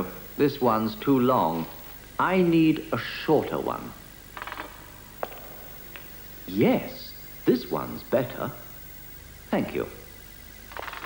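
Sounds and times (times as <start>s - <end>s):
sharp clicks: 4.4s - 6.1s.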